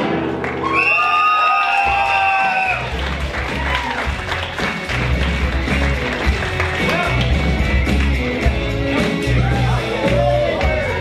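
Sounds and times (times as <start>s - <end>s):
audience applause and cheering: 0.0s - 11.0s
music bass beat: 1.9s - 11.0s.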